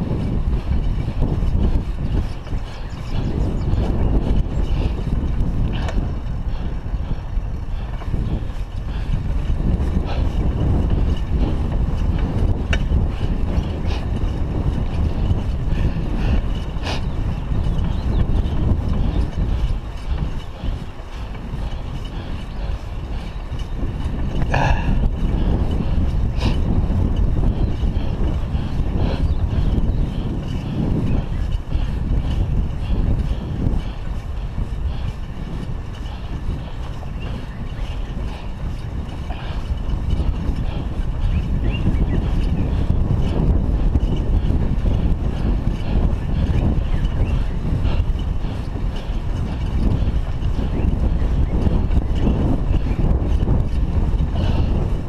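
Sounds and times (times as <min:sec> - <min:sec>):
wind rushing over microphone: 0:00.0 - 0:55.0.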